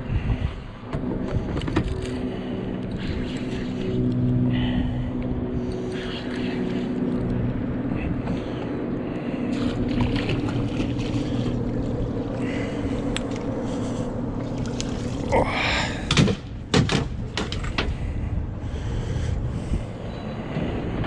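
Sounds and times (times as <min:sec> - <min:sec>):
fish splashing: 0:09.3 - 0:16.0.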